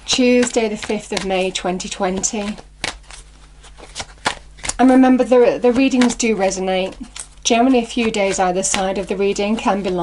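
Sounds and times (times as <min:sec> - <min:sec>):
cards shuffling: 0:00.1 - 0:10.0
card snaps: 0:02.8 - 0:04.8.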